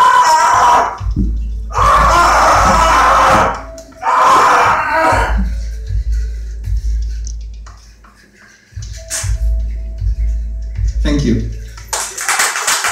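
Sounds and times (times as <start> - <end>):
man screaming: 0.0 - 1.0, 1.7 - 5.5.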